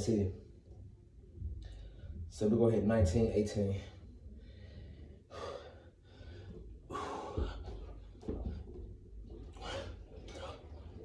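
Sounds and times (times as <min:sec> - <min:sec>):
man breathing heavily: 0:04.3 - 0:08.6, 0:09.5 - 0:11.0.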